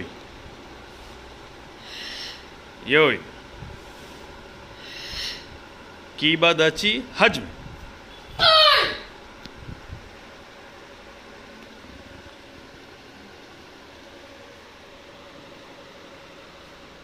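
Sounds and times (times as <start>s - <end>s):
air conditioning hum and hiss: 0.0s - 17.0s.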